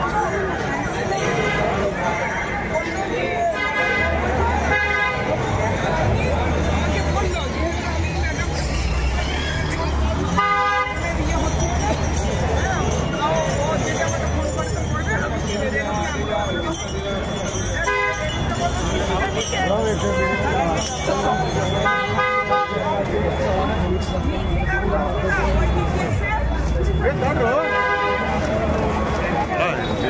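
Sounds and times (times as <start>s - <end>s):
crowd chatter: 0.0s - 30.0s
vehicle horn honking: 10.4s - 11.0s, 21.8s - 22.9s, 27.5s - 28.5s.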